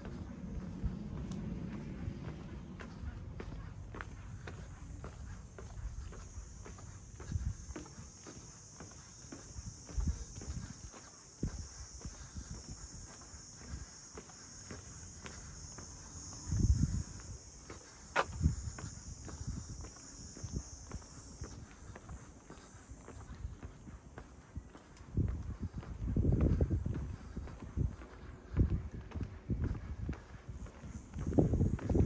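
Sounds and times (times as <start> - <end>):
footsteps on asphalt: 0.0 - 32.0.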